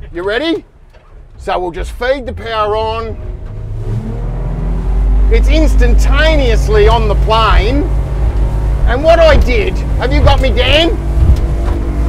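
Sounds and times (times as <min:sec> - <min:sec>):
outboard motor accelerating: 0:02.2 - 0:12.0.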